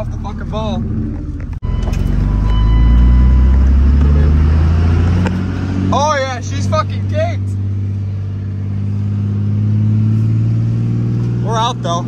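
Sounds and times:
truck engine running inside cab: 0.0s - 12.0s.

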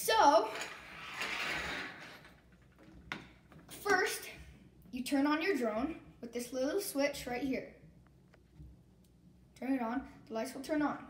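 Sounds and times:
plastic items scraping on tabletop: 0.5s - 2.5s.

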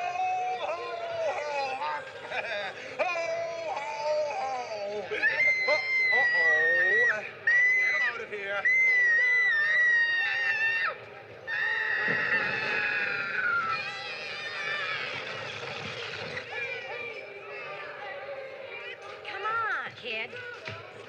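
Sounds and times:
young child screaming: 8.7s - 15.3s.

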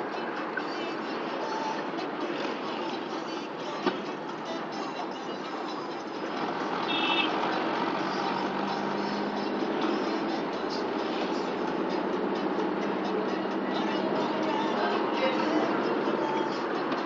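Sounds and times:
car road and engine noise: 0.0s - 17.0s.

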